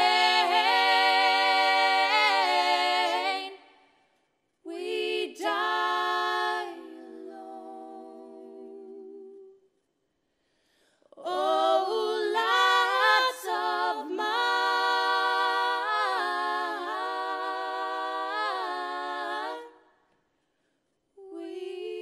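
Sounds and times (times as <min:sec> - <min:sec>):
women singing a cappella in harmony: 0:00.0 - 0:09.7, 0:11.1 - 0:20.2, 0:21.1 - 0:22.0.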